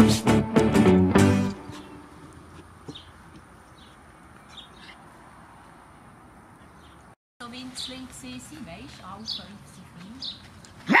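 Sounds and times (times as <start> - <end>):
acoustic guitar music: 0.0 - 2.2
faint outdoor ambience: 0.0 - 11.0.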